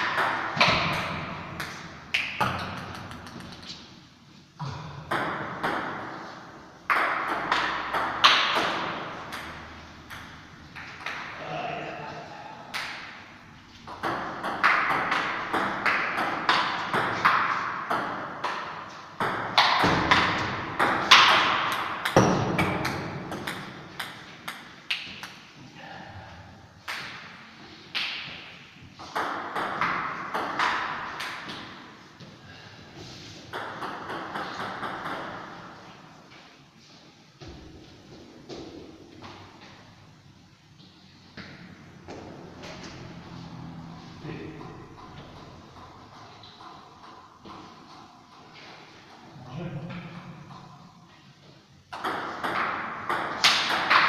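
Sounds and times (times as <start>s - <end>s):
ping pong ball clicking off paddles: 0.0s - 3.8s, 6.9s - 11.4s, 13.9s - 25.4s, 27.9s - 31.8s, 33.5s - 35.7s, 51.9s - 54.0s.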